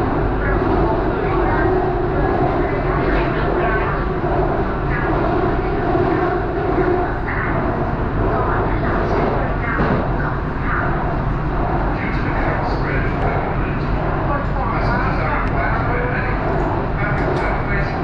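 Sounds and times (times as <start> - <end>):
train wheels and motors rumbling: 0.0 - 18.0.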